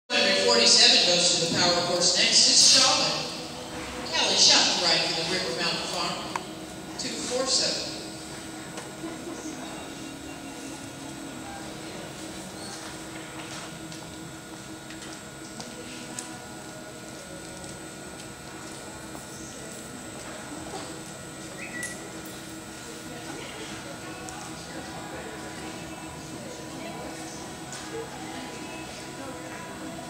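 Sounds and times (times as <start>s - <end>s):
distant murmur of voices: 0.1s - 30.0s
indoor arena hum: 0.1s - 30.0s.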